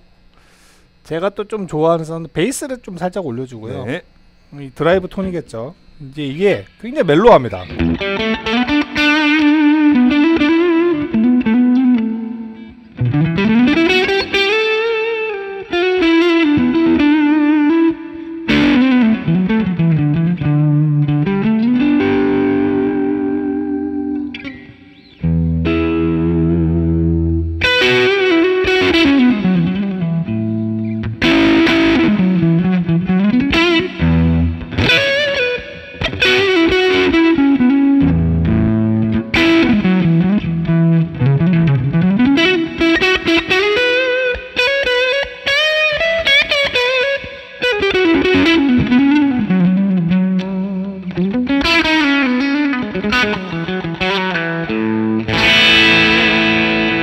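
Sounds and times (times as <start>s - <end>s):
overdriven electric guitar playing: 5.3s - 57.0s.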